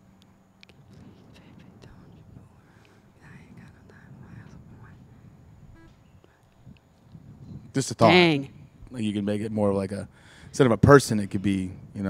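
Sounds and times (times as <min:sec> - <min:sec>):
low background hum: 0:00.0 - 0:12.0
faint whispering: 0:00.6 - 0:06.8.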